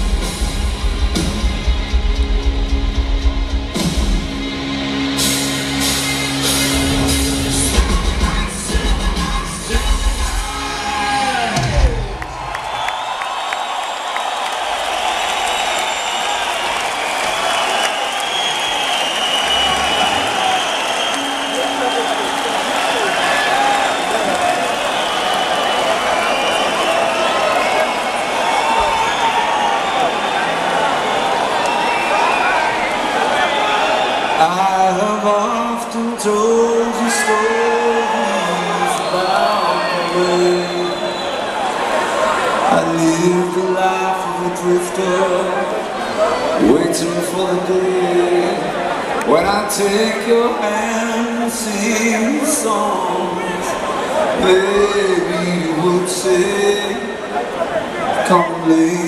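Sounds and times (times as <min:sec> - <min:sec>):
rock band closing chords: 0:00.0 - 0:12.6
concert crowd cheering: 0:00.0 - 0:59.0.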